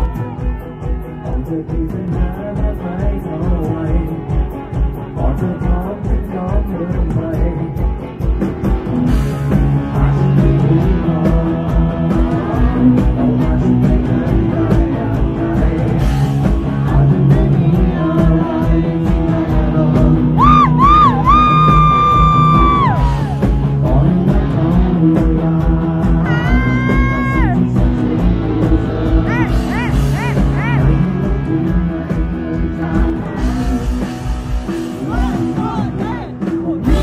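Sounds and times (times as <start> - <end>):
person singing: 0.0 - 8.2, 9.5 - 37.0
live rock band playing: 0.0 - 37.0.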